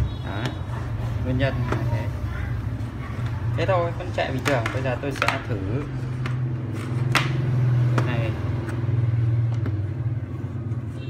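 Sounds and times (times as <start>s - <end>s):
objects clicking on a bench: 4.3s - 5.6s.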